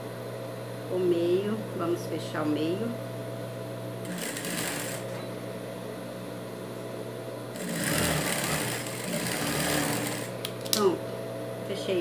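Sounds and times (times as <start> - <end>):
sewing machine motor humming: 4.0 - 5.2, 7.6 - 10.4
sewing machine stitching: 4.1 - 5.1, 7.6 - 10.3.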